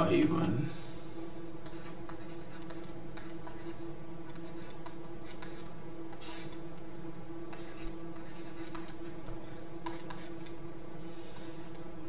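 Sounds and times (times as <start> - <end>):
low electrical hum: 0.0 - 12.0
pen scratching on tablet screen: 1.6 - 6.6, 7.5 - 9.2, 9.8 - 10.6.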